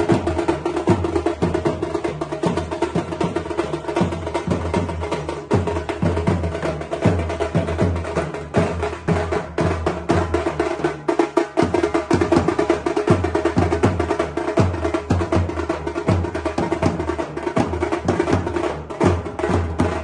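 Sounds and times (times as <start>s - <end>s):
barrel drums beaten with sticks: 0.0s - 20.0s.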